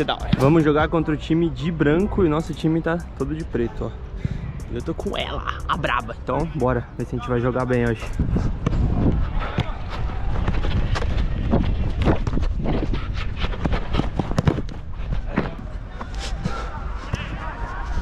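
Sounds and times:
wind rumble on microphone: 0:08.0 - 0:18.0
ball touches: 0:08.2 - 0:18.0
footfalls on artificial turf: 0:08.3 - 0:18.0.

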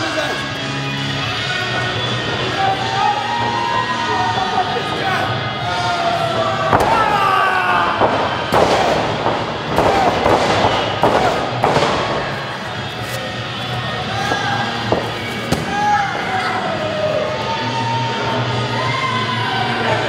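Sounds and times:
music: 0:00.0 - 0:20.0
voices: 0:00.0 - 0:20.0.

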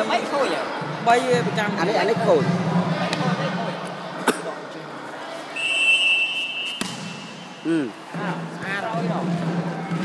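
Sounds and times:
referee's whistle blast: 0:05.6 - 0:07.6.

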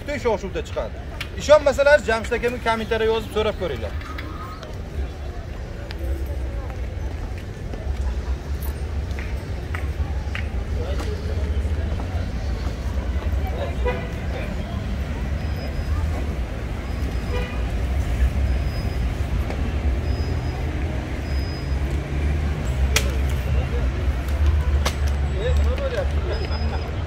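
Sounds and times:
faint voices: 0:00.0 - 0:27.0
traffic rumble: 0:00.0 - 0:27.0.

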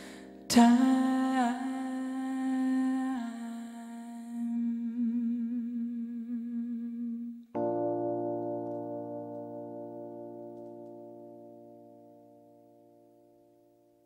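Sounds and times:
keyboard chord: 0:07.5 - 0:14.0.

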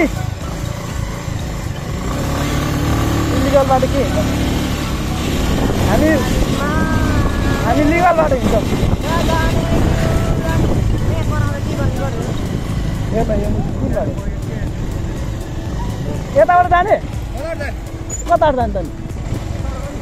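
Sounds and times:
motorcycle engine rumble: 0:00.0 - 0:20.0
voices talking: 0:00.0 - 0:20.0
wind on microphone: 0:04.8 - 0:16.4.

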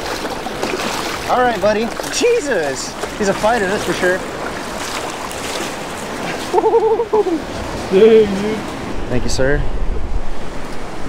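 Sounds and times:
surf washing and splashing: 0:00.0 - 0:11.0
person's wavering vocal sound: 0:06.5 - 0:08.6.

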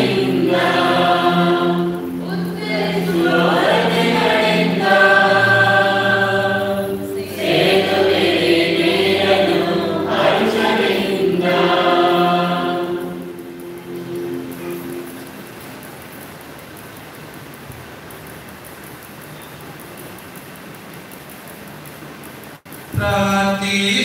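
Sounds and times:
church choir singing: 0:00.0 - 0:15.6
room noise hiss: 0:00.0 - 0:24.0.

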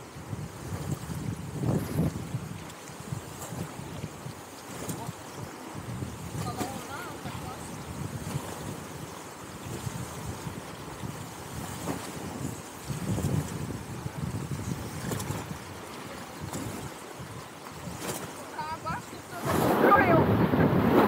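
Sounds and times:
wind rumble on microphone: 0:00.0 - 0:21.0
rushing whitewater: 0:01.6 - 0:09.8, 0:10.6 - 0:21.0.

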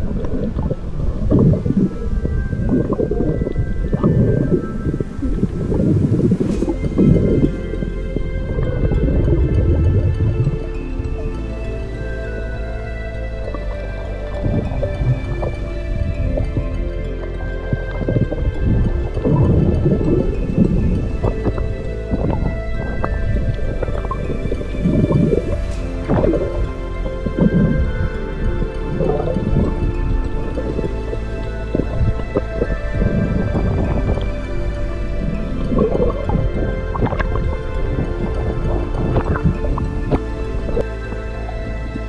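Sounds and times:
background music: 0:00.0 - 0:42.0
muffled underwater rumble: 0:00.0 - 0:42.0
small crackles: 0:00.0 - 0:42.0.

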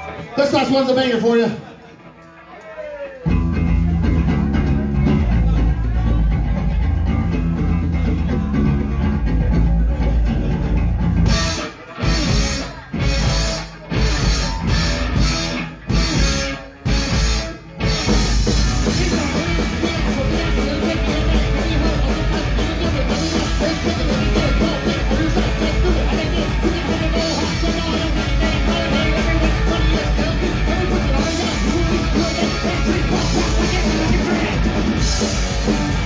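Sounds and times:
punk rock band playing: 0:00.0 - 0:02.2, 0:03.2 - 0:36.0.

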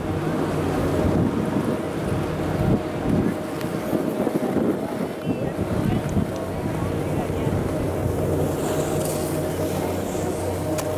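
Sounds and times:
wind on microphone: 0:00.0 - 0:10.9
skis sliding over snow: 0:05.9 - 0:10.9.

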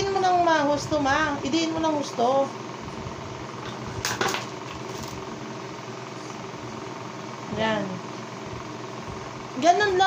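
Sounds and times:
steady background hum: 0:00.0 - 0:10.0.

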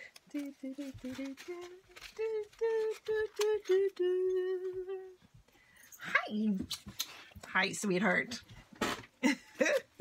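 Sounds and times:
woman humming a tune: 0:00.3 - 0:05.2.

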